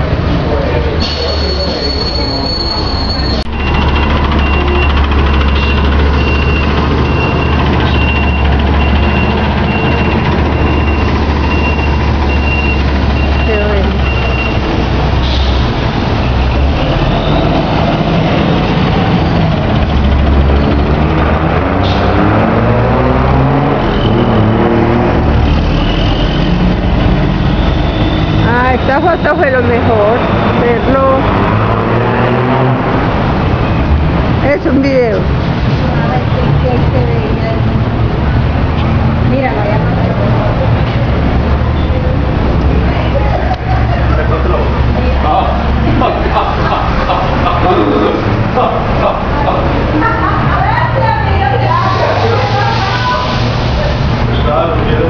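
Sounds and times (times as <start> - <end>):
bus engine rumbling: 0.0 - 55.0
indistinct voices: 0.0 - 55.0.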